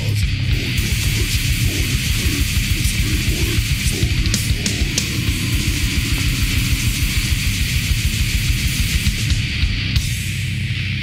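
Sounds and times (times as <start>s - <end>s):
fast dense drumming: 0.0s - 10.5s
distorted guitar riffing: 0.0s - 11.0s.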